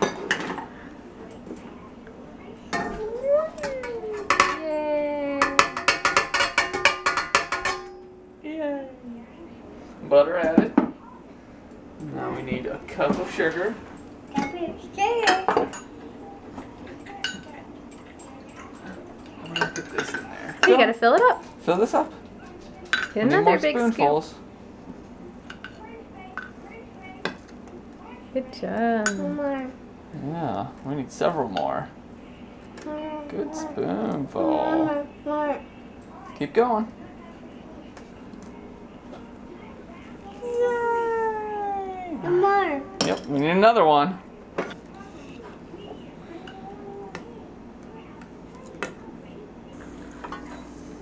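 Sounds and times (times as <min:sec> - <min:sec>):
spoon clinking on dishes: 0:05.4 - 0:08.0, 0:17.0 - 0:21.3.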